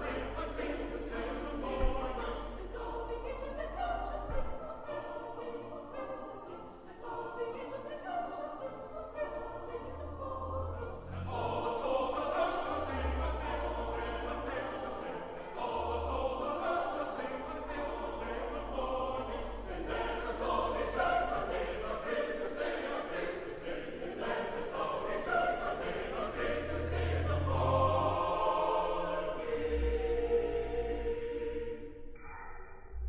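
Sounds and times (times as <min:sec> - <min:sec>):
choir singing: 0:00.0 - 0:32.2.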